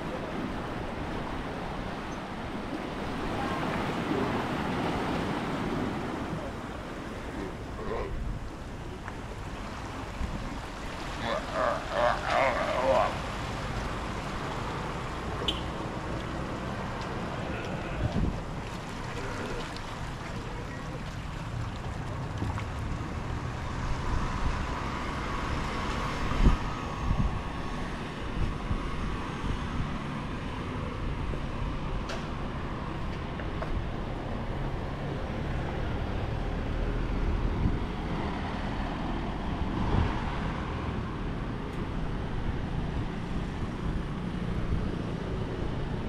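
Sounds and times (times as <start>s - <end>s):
faint outdoor background noise: 0.0s - 46.0s
wind buffeting microphone: 16.0s - 24.9s, 26.0s - 30.1s.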